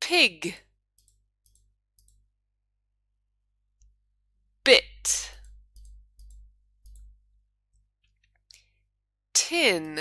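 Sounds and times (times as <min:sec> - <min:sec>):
faint clicks: 0:01.0 - 0:02.2.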